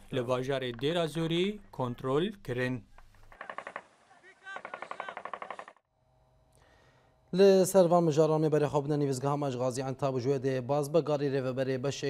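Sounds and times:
rapid automatic gunfire: 3.3s - 5.8s.

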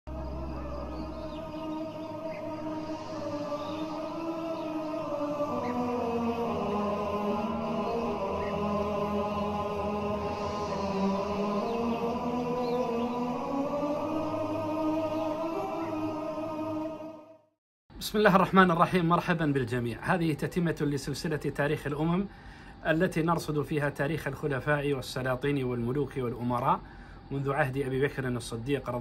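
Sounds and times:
low drone: 0.1s - 17.3s
wordless chanting voices: 0.1s - 17.5s, 18.1s - 29.0s.

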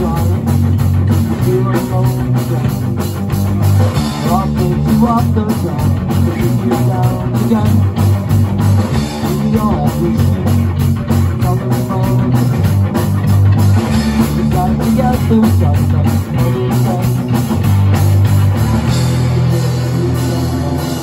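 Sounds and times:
bass guitar: 0.0s - 21.0s
drum kit beat: 0.0s - 21.0s
electric guitars: 0.0s - 21.0s.

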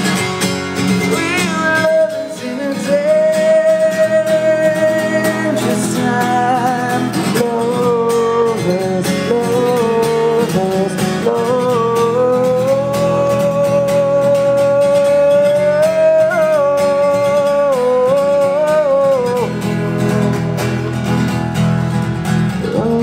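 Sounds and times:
strummed acoustic guitar: 0.0s - 23.0s
man singing long held notes: 1.1s - 20.5s, 22.6s - 23.0s.

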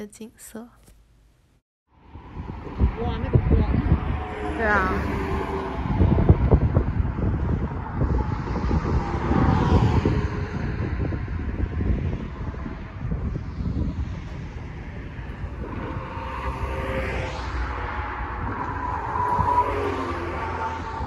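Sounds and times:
car traffic hum: 0.0s - 21.0s
wind buffeting microphone: 1.9s - 21.0s.

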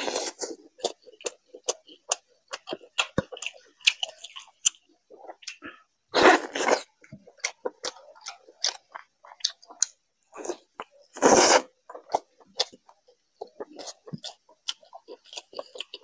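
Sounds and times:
person chewing with mouth smacks: 0.0s - 16.0s.

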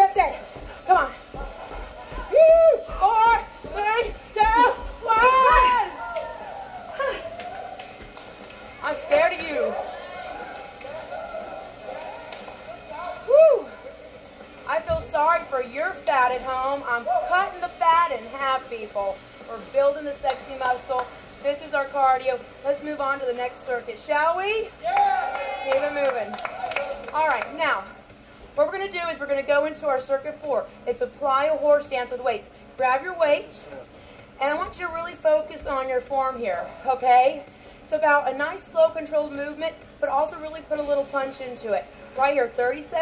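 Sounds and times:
music playing: 0.0s - 43.0s.

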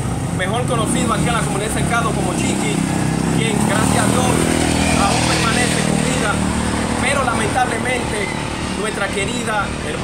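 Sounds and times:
people talking: 0.4s - 2.8s, 3.4s - 6.4s, 7.0s - 10.0s
small motorcycle passing: 0.7s - 10.0s.

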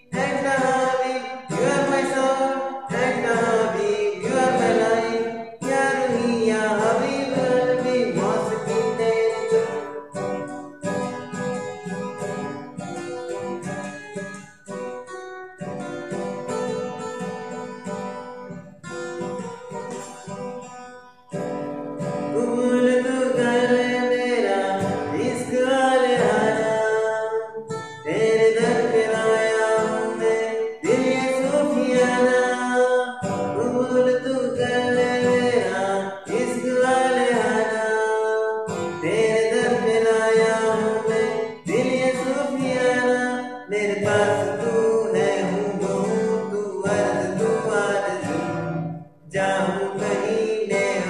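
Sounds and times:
man singing: 0.0s - 11.0s, 22.0s - 51.0s
acoustic guitar strumming: 0.0s - 51.0s.

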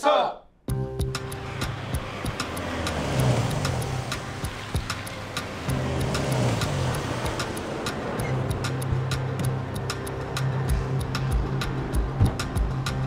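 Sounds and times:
even ticking: 0.7s - 13.0s
van engine and road rumble: 0.7s - 13.0s.

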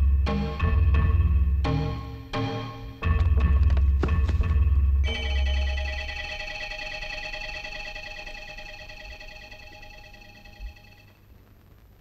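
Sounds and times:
shimmering synthesizer chord: 5.0s - 11.1s.

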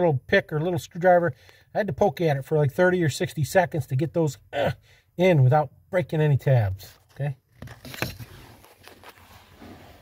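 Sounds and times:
rustling: 6.8s - 10.0s.

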